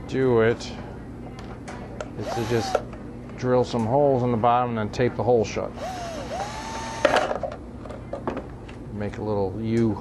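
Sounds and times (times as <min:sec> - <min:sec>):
cordless drill whining: 0:02.2 - 0:02.8, 0:05.8 - 0:07.2.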